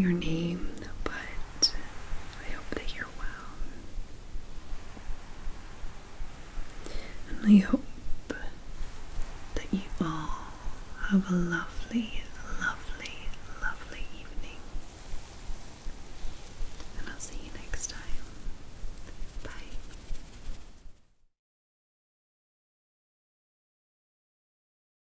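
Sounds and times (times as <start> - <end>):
woman whispering: 0.0 - 3.9, 6.9 - 8.6, 9.5 - 14.8, 16.9 - 20.0.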